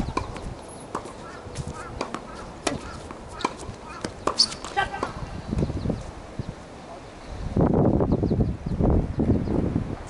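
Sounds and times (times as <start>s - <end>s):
tennis ball bouncing on court: 2.0s - 5.2s
tennis ball hitting racket strings: 2.0s - 5.2s.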